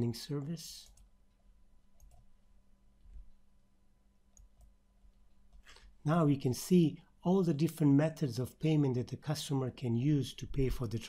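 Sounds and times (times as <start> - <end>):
low steady hum: 0.0 - 11.0
computer mouse clicks: 2.0 - 2.3.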